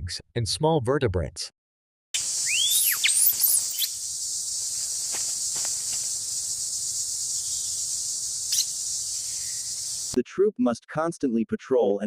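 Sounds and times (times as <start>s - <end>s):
bird chirps: 2.2s - 10.2s
high insect drone: 2.2s - 10.2s.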